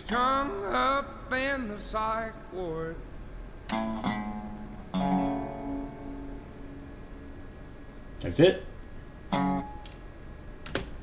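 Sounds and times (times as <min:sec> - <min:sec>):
resonator guitar strumming chords: 0:00.0 - 0:03.0, 0:03.7 - 0:08.0, 0:09.3 - 0:10.0.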